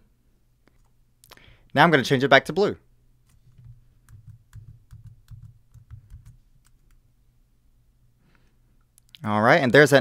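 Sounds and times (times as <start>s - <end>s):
soft thuds of keystrokes: 3.3s - 7.0s.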